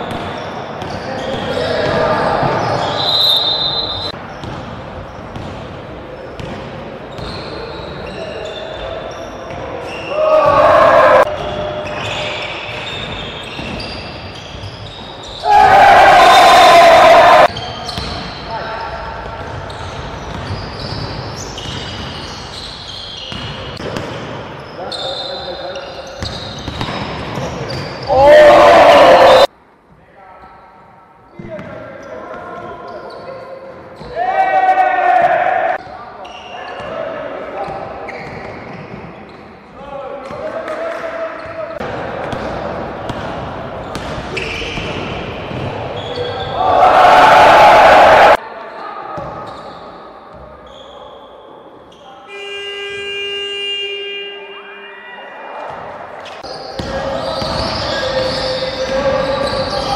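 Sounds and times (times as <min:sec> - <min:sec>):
shoe squeaks: 0:00.0 - 0:05.5, 0:07.1 - 0:10.2, 0:11.3 - 0:15.5, 0:17.5 - 0:28.1, 0:31.3 - 0:34.2, 0:35.8 - 0:39.6, 0:43.8 - 0:45.0, 0:45.9 - 0:46.6, 0:48.8 - 0:54.9, 0:56.2 - 0:59.9
players' voices: 0:00.4 - 0:04.4, 0:31.3 - 0:49.9, 0:51.9 - 0:59.9
basketball bouncing: 0:04.4 - 0:05.8, 0:06.4 - 0:07.4, 0:18.0 - 0:18.3, 0:19.4 - 0:22.2, 0:23.3 - 0:24.4, 0:26.2 - 0:27.8, 0:41.8 - 0:45.8.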